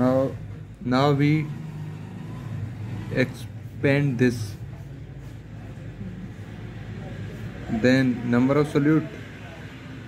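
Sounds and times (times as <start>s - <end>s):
man speaking: 3.0s - 4.8s, 7.6s - 9.3s.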